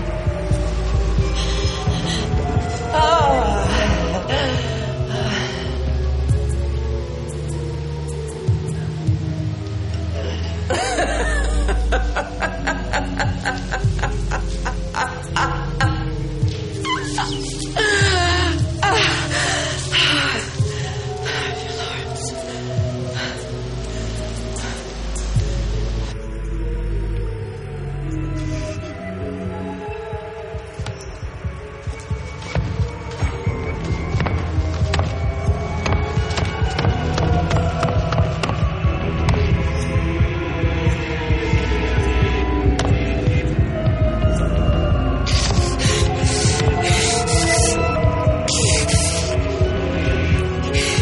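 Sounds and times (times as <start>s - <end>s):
dramatic underscore music: 0.0s - 51.0s
woman cackling laughter: 10.7s - 16.1s, 16.8s - 18.0s.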